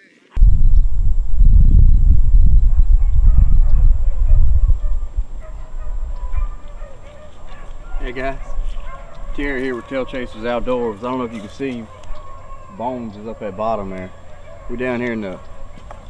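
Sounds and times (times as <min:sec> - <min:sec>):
wind buffeting microphone: 0:00.4 - 0:16.0
faint animal calls: 0:02.6 - 0:16.0.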